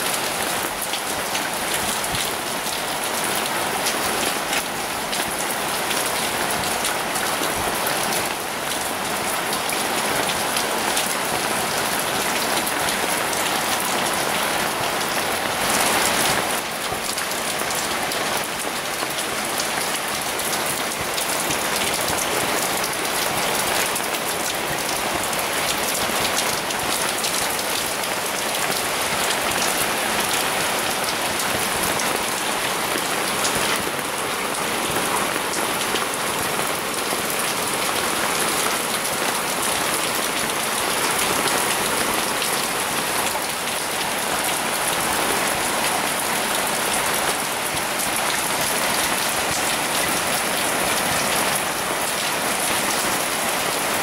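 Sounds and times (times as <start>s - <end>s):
heavy rain on rooftops: 0.0s - 54.0s.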